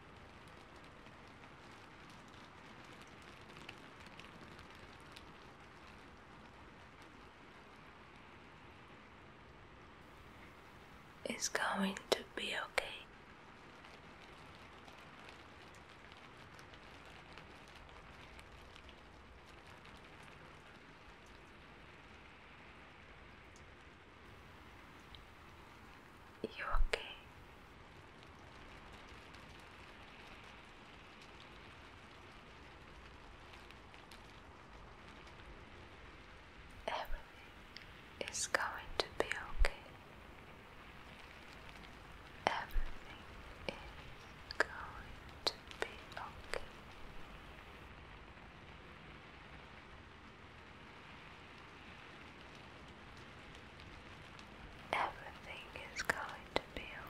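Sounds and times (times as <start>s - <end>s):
faint steady hiss: 0.0s - 57.0s
soft whispering: 10.2s - 13.2s, 24.7s - 27.6s, 36.8s - 47.8s, 54.8s - 57.0s.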